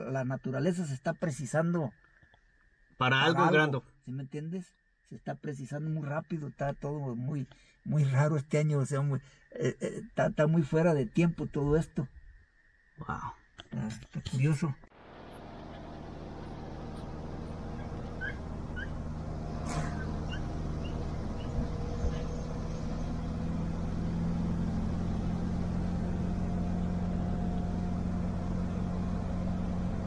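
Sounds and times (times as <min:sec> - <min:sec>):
car engine and road noise: 0:14.9 - 0:30.0.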